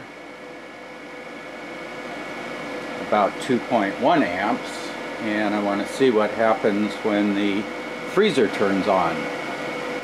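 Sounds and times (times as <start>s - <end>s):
fans whirring: 0.0s - 10.0s.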